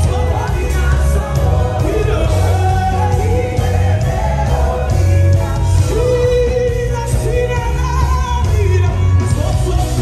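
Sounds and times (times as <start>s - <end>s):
band with heavy bass: 0.0s - 10.0s.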